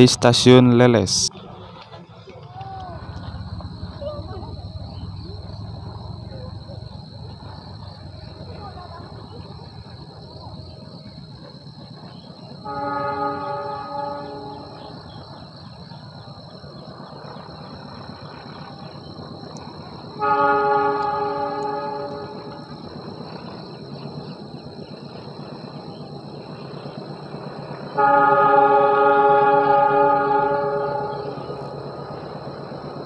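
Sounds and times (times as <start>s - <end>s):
train rumbling: 0.0s - 33.0s
locomotive horn blasts: 12.6s - 15.3s, 20.2s - 22.8s, 28.0s - 31.8s.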